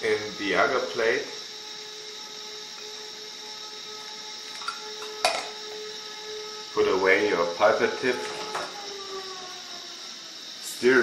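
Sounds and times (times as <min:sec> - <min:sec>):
steady hum with high whine: 0:00.0 - 0:11.0.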